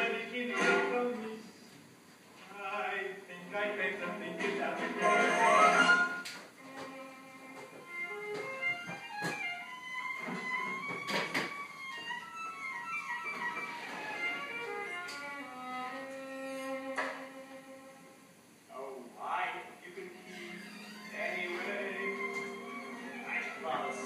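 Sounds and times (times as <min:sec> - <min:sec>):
violin melody: 0:04.0 - 0:18.2, 0:19.8 - 0:24.0.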